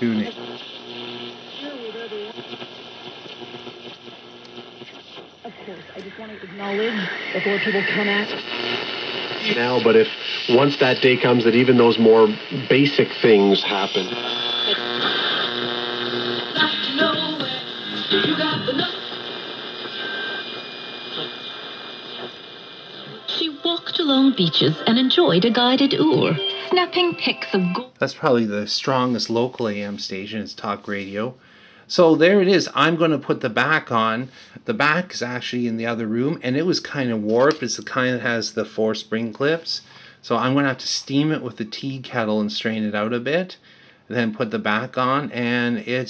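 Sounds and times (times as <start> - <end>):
radio broadcast voice: 0.0 - 22.3, 22.9 - 31.3, 31.9 - 46.0
static hiss: 0.0 - 46.0.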